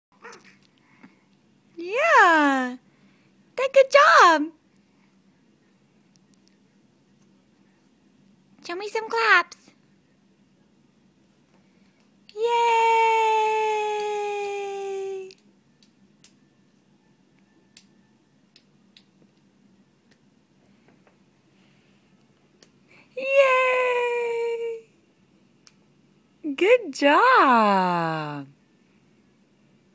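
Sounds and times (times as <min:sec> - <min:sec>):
small baby vocal sound: 0:00.1 - 0:01.1.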